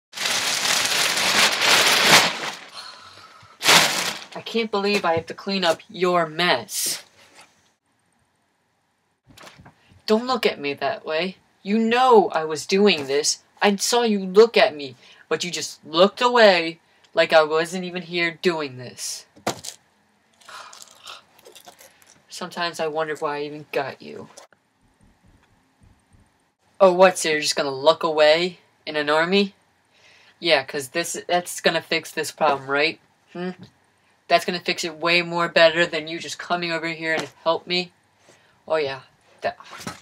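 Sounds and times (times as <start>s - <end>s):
plastic bag rustling and crinkling: 0.1s - 3.0s, 3.6s - 5.8s, 39.4s - 40.0s.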